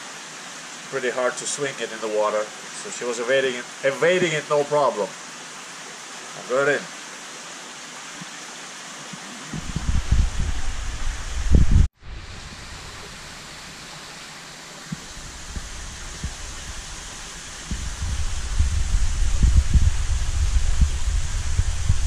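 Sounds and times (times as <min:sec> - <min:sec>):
water rushing hiss: 0:00.0 - 0:22.0
low rumbling knocks: 0:09.5 - 0:11.9, 0:17.6 - 0:22.0.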